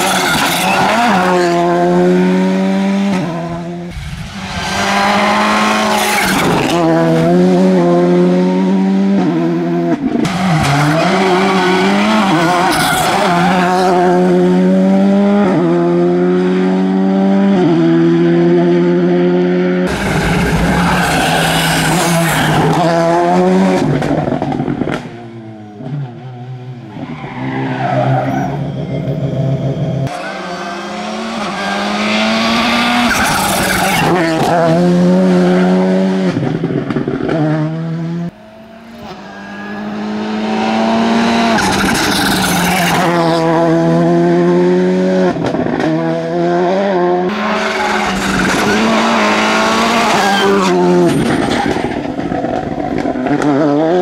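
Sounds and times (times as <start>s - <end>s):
rally car engine revving: 0.0s - 54.0s.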